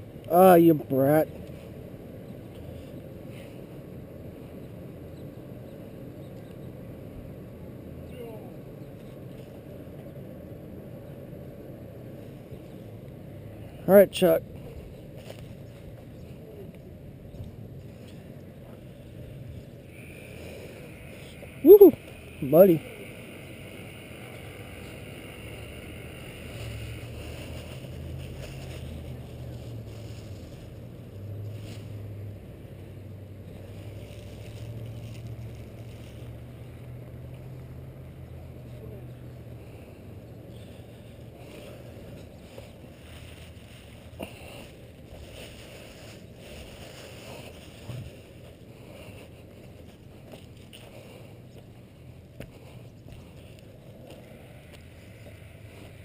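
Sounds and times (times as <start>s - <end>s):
handling and wind rumble: 14.4s - 56.0s.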